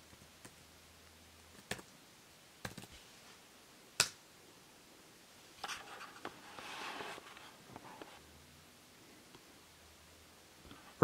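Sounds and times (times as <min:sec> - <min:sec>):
soft rustle: 0:02.9 - 0:03.6, 0:05.5 - 0:08.3.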